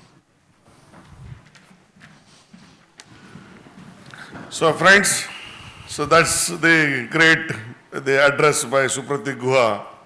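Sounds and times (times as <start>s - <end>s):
footsteps on a stage: 0.0s - 5.0s.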